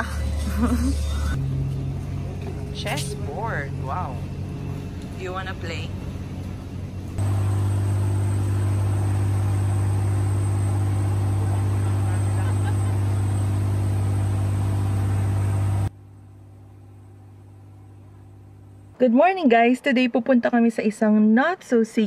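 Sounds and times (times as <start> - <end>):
wind: 0.0 - 15.9
motorboat engine drone: 0.0 - 19.0.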